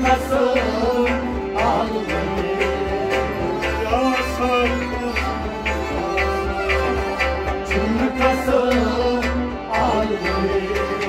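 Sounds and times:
bowed string instrument: 0:00.0 - 0:11.0
harmonium sustained notes: 0:00.0 - 0:11.0.

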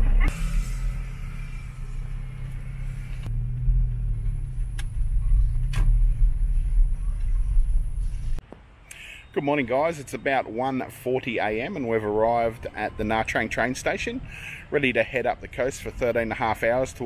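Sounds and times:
engine and road rumble in car: 0:00.0 - 0:08.4.

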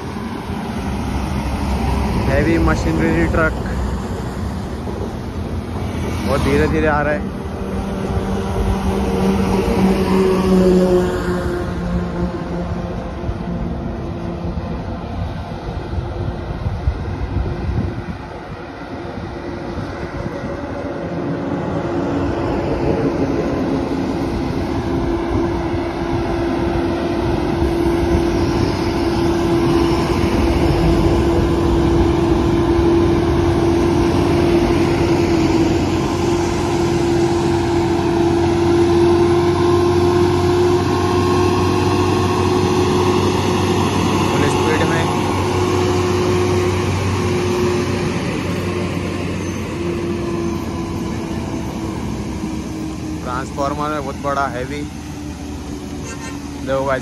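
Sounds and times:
truck diesel engine drone: 0:00.0 - 0:57.0.

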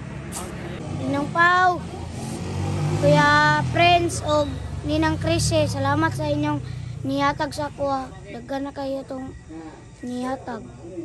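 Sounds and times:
boy's drawn-out voice: 0:00.4 - 0:02.2, 0:03.0 - 0:10.8.

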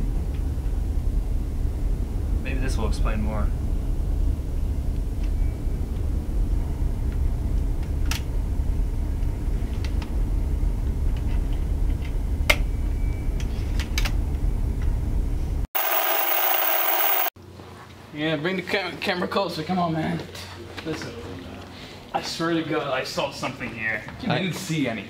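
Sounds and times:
video static hissing: 0:15.8 - 0:17.3.

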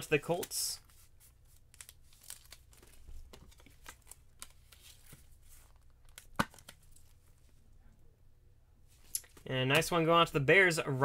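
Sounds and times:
plastic card sleeve rustling: 0:00.1 - 0:07.6.

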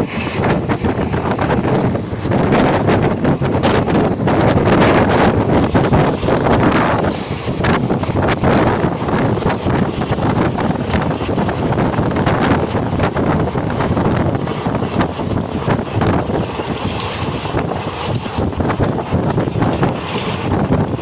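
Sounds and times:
train running noise: 0:00.0 - 0:21.0
wind buffeting microphone: 0:00.0 - 0:21.0.

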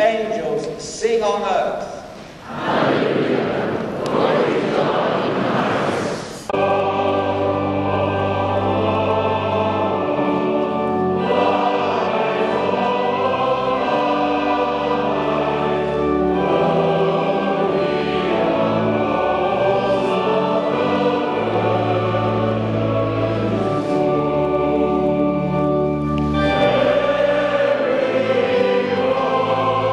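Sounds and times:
choir singing: 0:02.4 - 0:29.9
organ: 0:04.4 - 0:29.9.

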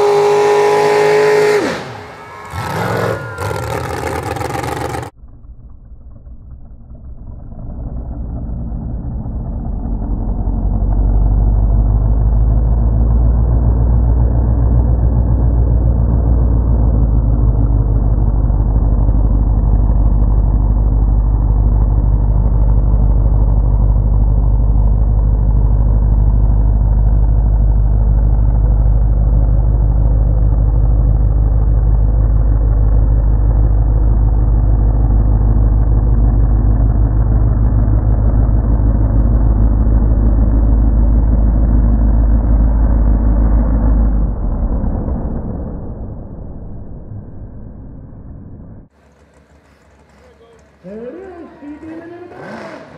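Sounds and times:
truck churning through mud: 0:00.0 - 0:05.1, 0:48.9 - 0:52.9
truck engine running hard: 0:00.0 - 0:05.2, 0:05.9 - 0:52.9.

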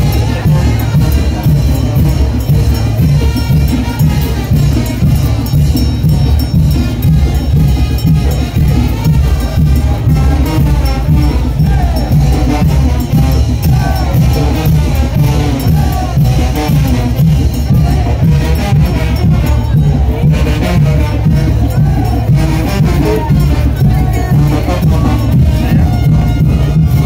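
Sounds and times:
brass band playing: 0:00.0 - 0:27.0
drum beat: 0:00.0 - 0:27.0.

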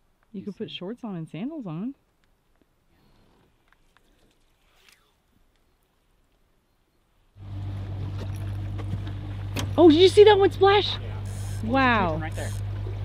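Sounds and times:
faint ticks: 0:03.4 - 0:05.7
outboard motor humming: 0:07.4 - 0:13.0.

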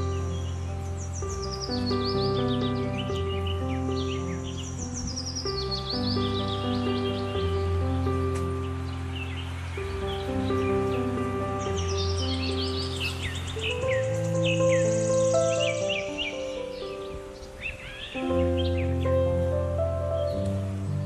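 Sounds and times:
calm sustained chord music: 0:00.0 - 0:21.0
small birds chirping: 0:00.0 - 0:21.0.

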